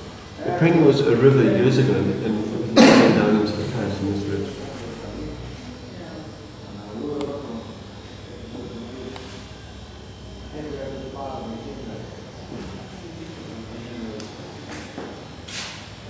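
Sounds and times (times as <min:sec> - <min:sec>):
distant people talking: 0:00.0 - 0:16.0
low room hum: 0:00.0 - 0:16.0.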